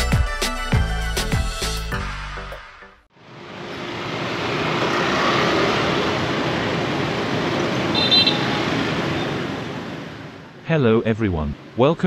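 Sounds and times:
cars and motorbikes passing: 3.2 - 12.0
short high vehicle horn beep: 7.9 - 8.6.

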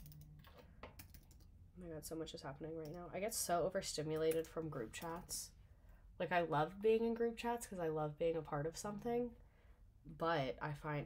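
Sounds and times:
typing on computer keyboard: 0.0 - 1.5.

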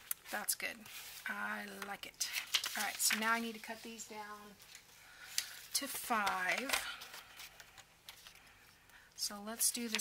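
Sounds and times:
paper and plastic tapping and rustling: 1.7 - 3.8, 4.7 - 8.4, 9.7 - 10.0.

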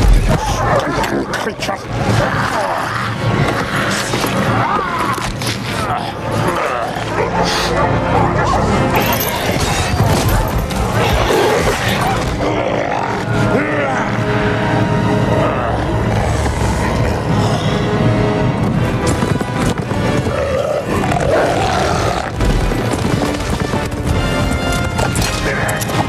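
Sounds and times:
beasts growling and roaring: 0.0 - 24.0
battle film music: 0.0 - 26.0
person grunting and straining: 15.2 - 18.0
horses galloping: 18.7 - 26.0.

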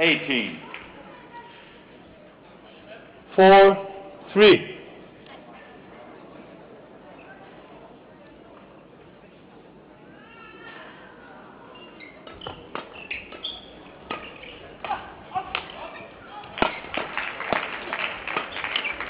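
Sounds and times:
shoes squeaking on court: 11.7 - 14.8, 18.4 - 19.0
rackets striking shuttlecock: 12.3 - 15.9, 16.5 - 17.6.

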